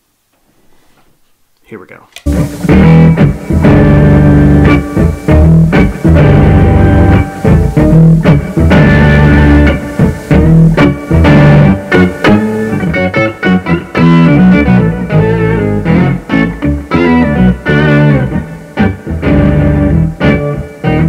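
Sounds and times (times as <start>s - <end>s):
electric guitar chords: 2.2s - 21.0s.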